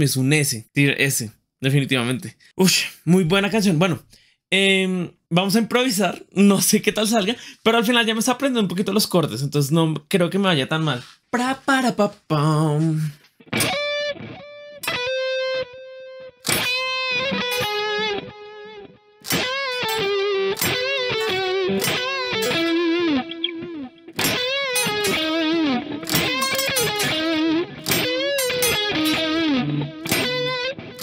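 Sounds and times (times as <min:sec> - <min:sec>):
electric guitar lead phrases: 0:13.4 - 0:31.0.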